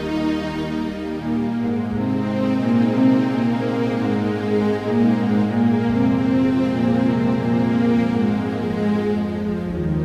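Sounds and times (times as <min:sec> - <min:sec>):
slow keyboard music: 0:00.0 - 0:10.0.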